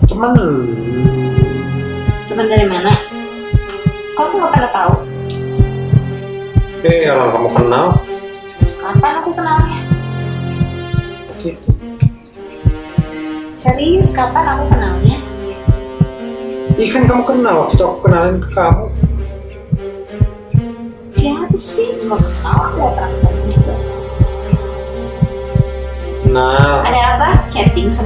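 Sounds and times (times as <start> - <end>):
low drone: 0.0 - 4.1, 17.8 - 28.0
heartbeat thumps: 0.0 - 28.0
suspense music: 0.0 - 28.0.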